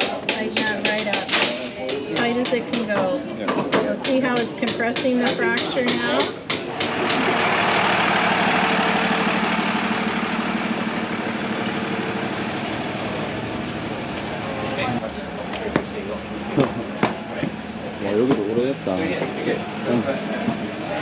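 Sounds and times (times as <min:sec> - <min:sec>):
large vehicle engine drone: 0:06.4 - 0:21.0.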